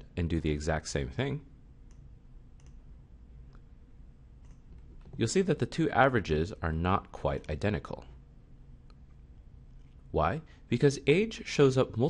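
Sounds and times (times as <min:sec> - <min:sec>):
low steady hum: 0:00.0 - 0:12.0
computer mouse clicks: 0:01.8 - 0:02.8, 0:04.4 - 0:05.2.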